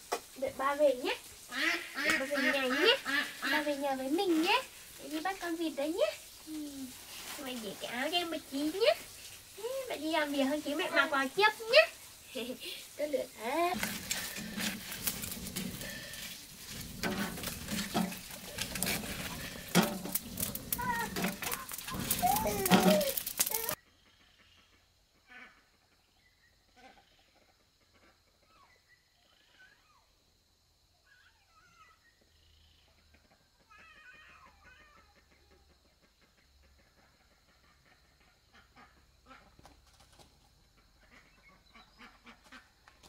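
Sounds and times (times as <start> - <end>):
steady high hiss: 0.0 - 23.8
wavering animal calls: 13.4 - 23.8
wood fire crackling and snapping: 13.6 - 23.8.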